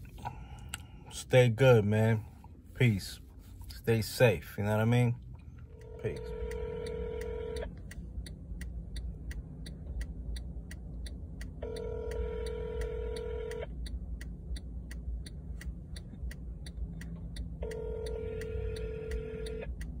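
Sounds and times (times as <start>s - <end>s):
low steady rumble: 0.0s - 20.0s
steady ticking: 4.6s - 20.0s.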